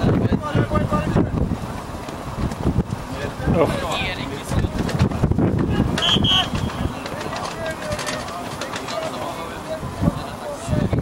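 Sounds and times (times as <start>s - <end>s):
players shouting: 5.6s - 10.8s.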